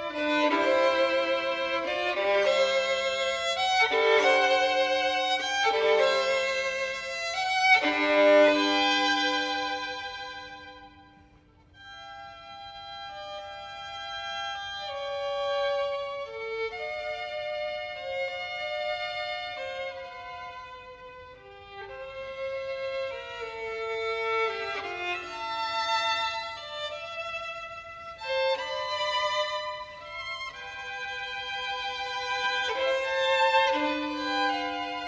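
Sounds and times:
solo violin melody: 0.0 - 35.0.

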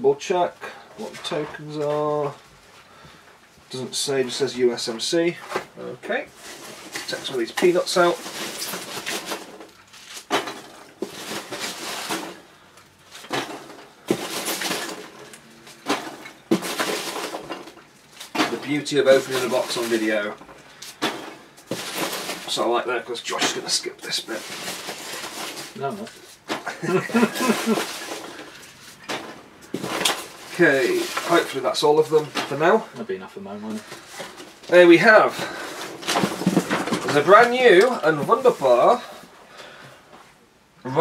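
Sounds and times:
packing peanuts rustling: 5.6 - 39.3.

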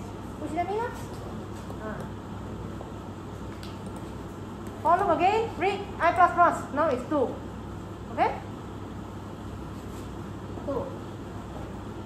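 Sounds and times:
low room hum: 0.0 - 12.0
woman speaking: 0.4 - 1.1, 1.8 - 2.2, 4.8 - 7.4, 8.1 - 8.5, 10.6 - 11.0.

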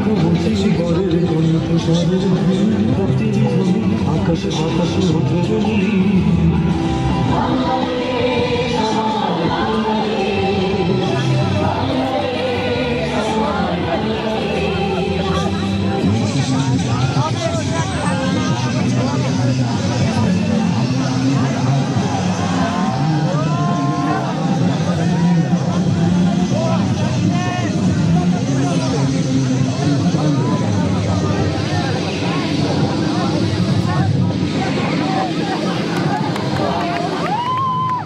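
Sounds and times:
crowd chatter: 0.0 - 38.0.

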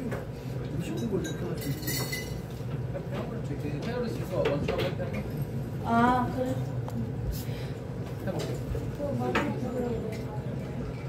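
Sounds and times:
glassware clinking: 0.8 - 2.5.

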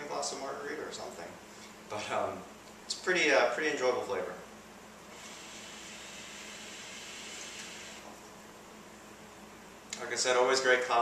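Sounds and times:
hookah bubbling hiss: 5.1 - 8.2.

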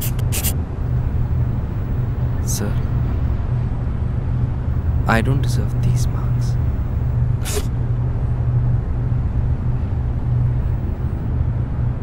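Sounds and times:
low hum and rumble: 0.0 - 12.0.

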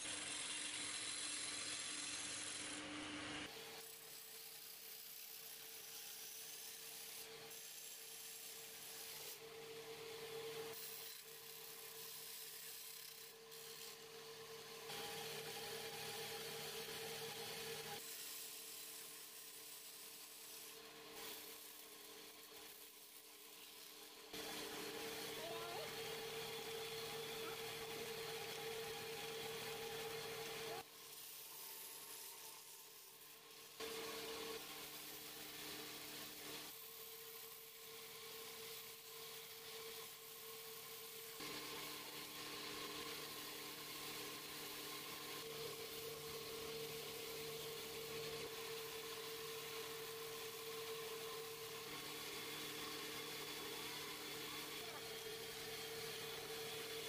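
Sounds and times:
wood lathe humming: 0.0 - 2.9, 3.5 - 19.8, 20.4 - 57.0.

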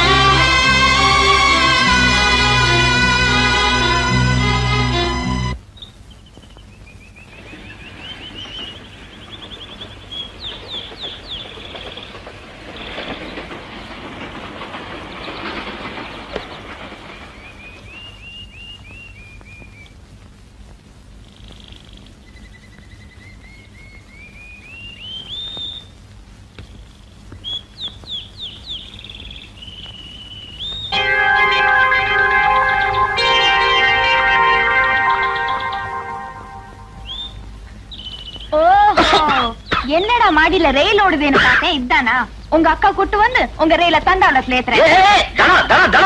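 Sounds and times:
birds chirping and whistling: 5.7 - 12.2, 15.2 - 20.0, 21.4 - 26.0, 27.4 - 31.1, 32.3 - 38.6
low steady hum: 16.6 - 46.0.

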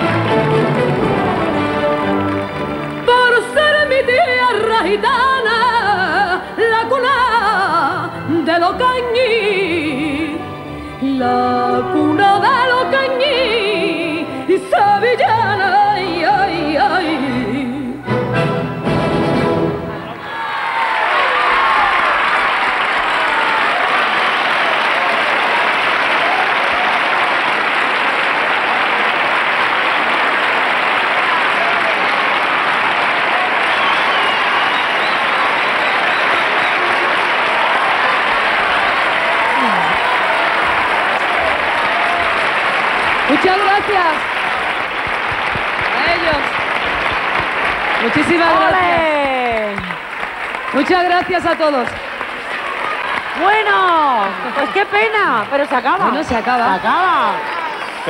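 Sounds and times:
audience applauding: 0.0 - 10.0, 20.0 - 58.0.

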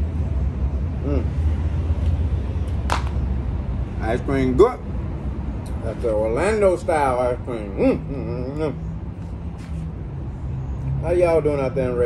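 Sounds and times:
constant low hum: 0.0 - 11.0
low rumble of traffic: 0.0 - 12.0.

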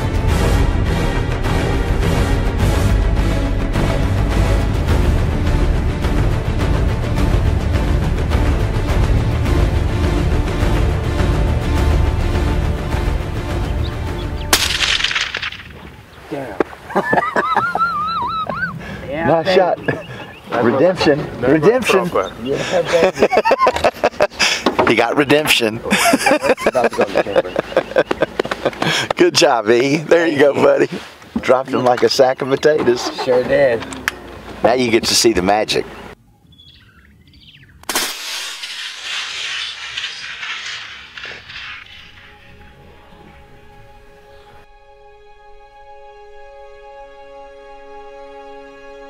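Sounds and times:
background music: 0.0 - 15.5, 41.9 - 49.0
rifle shot with echo: 14.5 - 15.9, 37.9 - 42.8
faint bird chirps: 19.8 - 20.5, 35.9 - 37.8
loud steady hiss: 37.9 - 43.1.

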